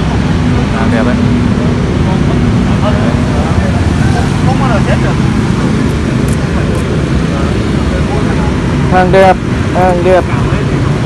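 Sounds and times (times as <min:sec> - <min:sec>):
faint voices: 0:00.0 - 0:11.0
low outdoor rumble: 0:00.0 - 0:11.0.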